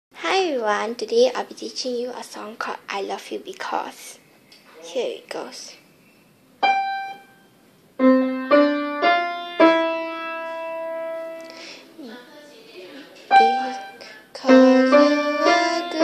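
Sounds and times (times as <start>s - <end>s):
piano single notes: 6.6s - 11.5s, 13.3s - 16.0s.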